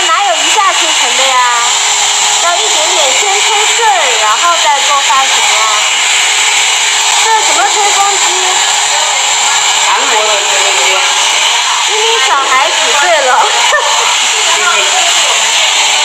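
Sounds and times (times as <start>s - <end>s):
voices talking: 0.0s - 1.8s, 2.4s - 6.0s, 7.0s - 16.0s
hair dryer blowing: 0.0s - 16.0s.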